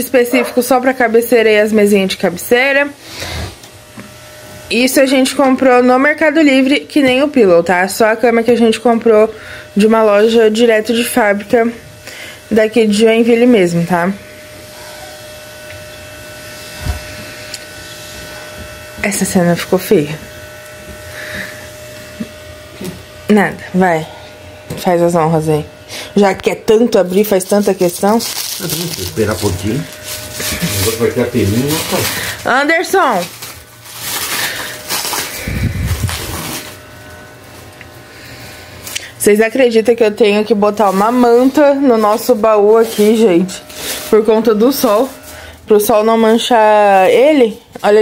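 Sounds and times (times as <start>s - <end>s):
steady background hum: 0.0s - 48.0s
thin constant whine: 0.0s - 48.0s
plastic packaging crinkling: 27.5s - 38.0s, 40.7s - 45.7s.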